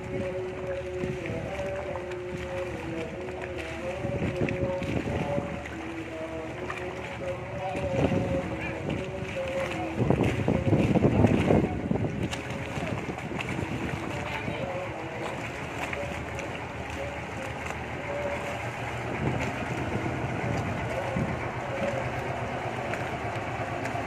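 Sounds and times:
low rumble: 0.0s - 24.0s
outdoor noise: 0.0s - 24.0s.

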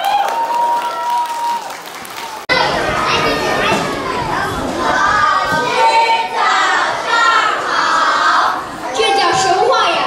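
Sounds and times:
children's voices chattering: 2.4s - 10.0s.

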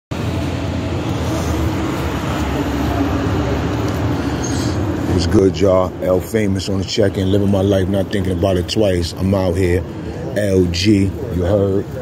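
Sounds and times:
city street traffic rumble: 0.1s - 12.0s.

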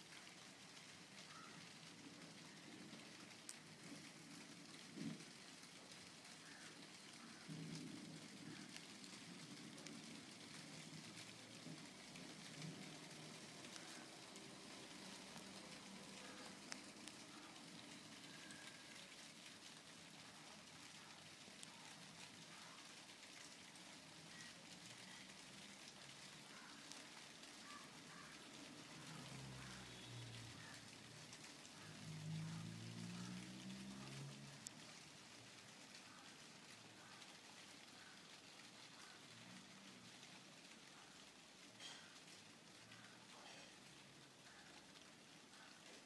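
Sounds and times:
faint hiss with crackle: 0.0s - 46.0s.

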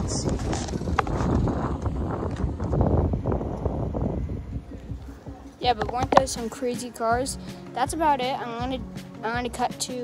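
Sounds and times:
wind buffeting microphone: 0.0s - 8.9s.

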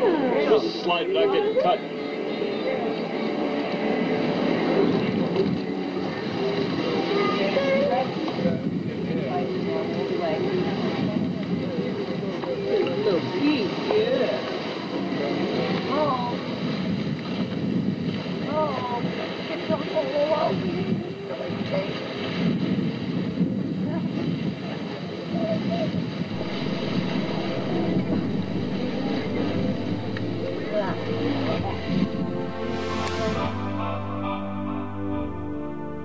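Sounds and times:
indistinct chatter of people: 0.0s - 36.0s
low background rumble: 26.2s - 36.0s.

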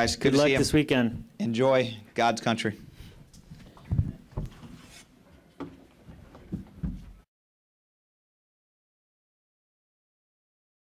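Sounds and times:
microphone handling thumps: 3.5s - 4.8s.

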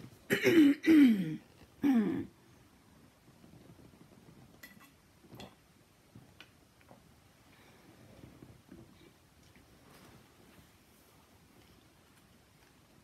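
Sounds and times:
woman clearing her throat: 0.3s - 2.3s.

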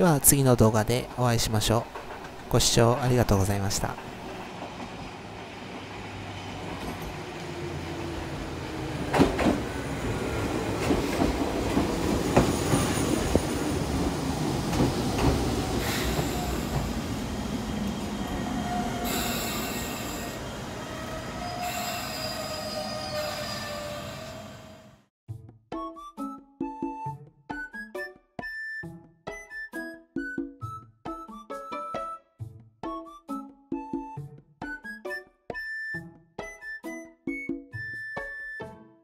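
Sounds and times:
electric train pulling in: 0.6s - 25.1s
wheels clacking over rail joints: 1.7s - 3.2s, 3.8s - 19.9s
high-pitched brake squeal: 18.2s - 24.9s.

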